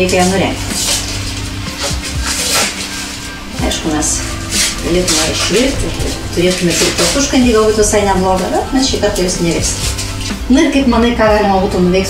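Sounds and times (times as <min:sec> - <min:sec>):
dry corn husks rustling: 0:00.0 - 0:10.8
soft background music: 0:00.0 - 0:12.0.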